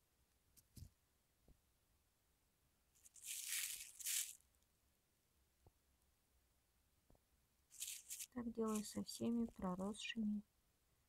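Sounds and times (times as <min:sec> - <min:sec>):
plastic film crinkling: 0:03.0 - 0:04.4, 0:07.7 - 0:09.6.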